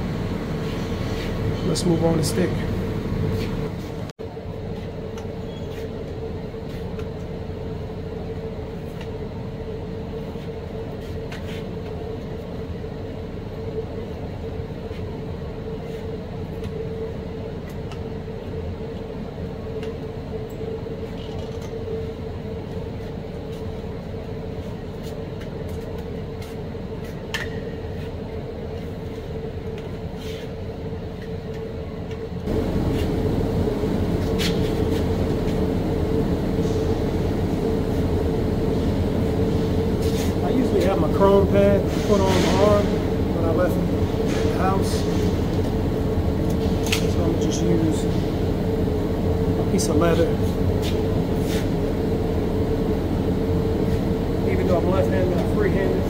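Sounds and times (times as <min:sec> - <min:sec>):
ventilation fans droning: 0:00.0 - 0:56.0.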